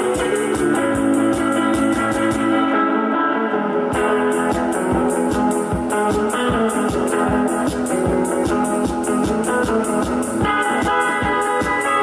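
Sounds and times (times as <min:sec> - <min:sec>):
steady drum beat: 0:00.0 - 0:02.6, 0:04.0 - 0:12.0
electric guitar rock instrumental: 0:00.0 - 0:12.0.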